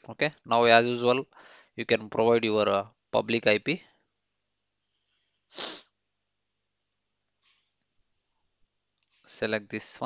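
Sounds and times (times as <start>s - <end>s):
person sneezing or exhaling sharply: 5.5s - 6.0s.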